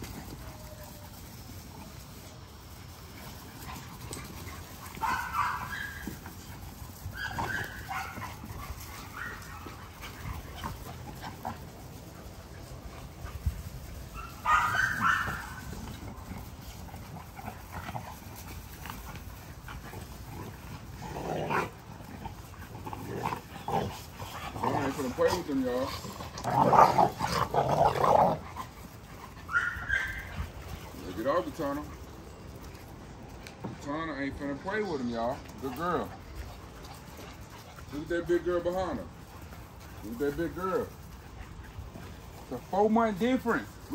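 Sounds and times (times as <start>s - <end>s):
puppies barking and yipping: 0.0s - 33.6s.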